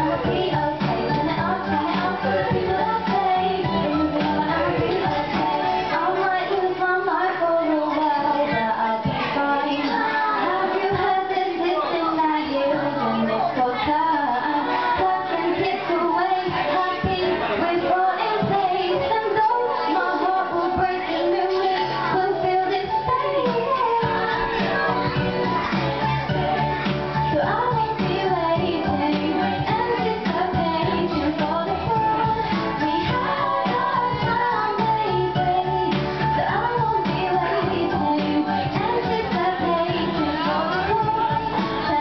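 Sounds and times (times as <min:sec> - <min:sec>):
backing track music: 0:00.0 - 0:42.0
woman singing pop song: 0:00.0 - 0:42.0.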